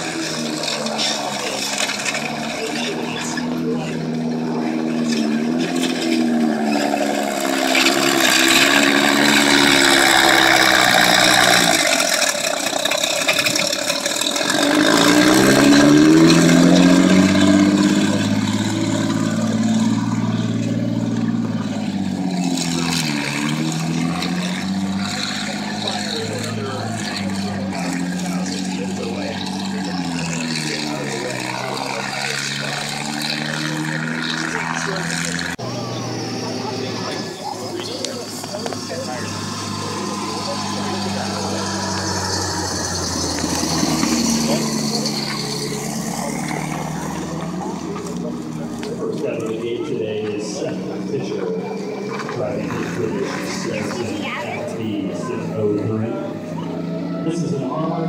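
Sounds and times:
tank engine revving: 0:00.0 - 0:58.0.

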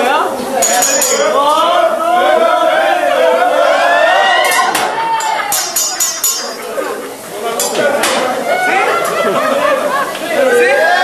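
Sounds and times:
diners talking: 0:00.0 - 0:11.0
metal spatulas clinking on griddle: 0:00.6 - 0:01.4, 0:05.2 - 0:06.8, 0:07.6 - 0:08.2.

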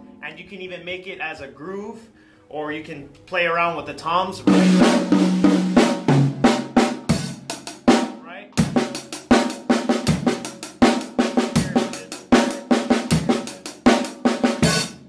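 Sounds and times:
drum kit played with sticks: 0:04.0 - 0:15.0.

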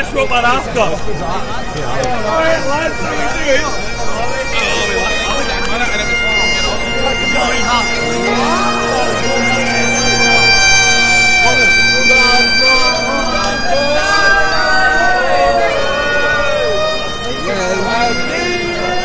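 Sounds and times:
bagpipes playing: 0:00.0 - 0:19.0
people talking: 0:00.0 - 0:19.0.

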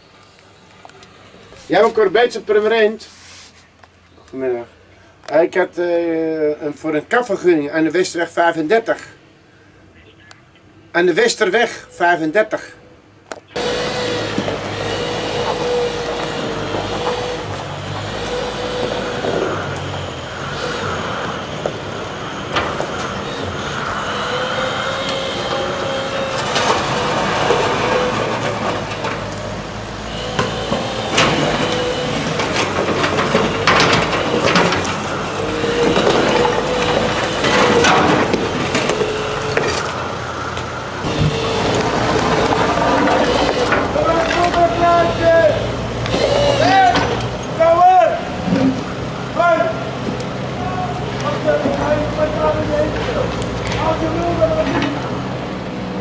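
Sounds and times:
diesel engine running: 0:13.5 - 0:56.0
timber breaking and crashing: 0:24.6 - 0:40.1.

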